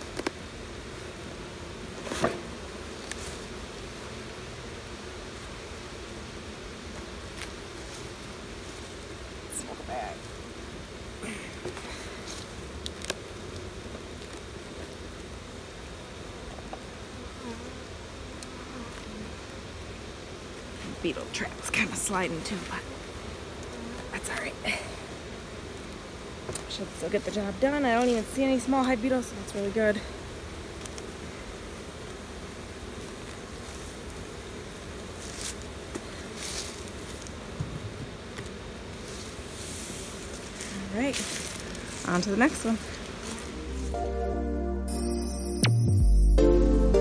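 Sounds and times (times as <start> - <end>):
bees buzzing: 0.0 - 47.0
honeybees humming: 0.0 - 47.0.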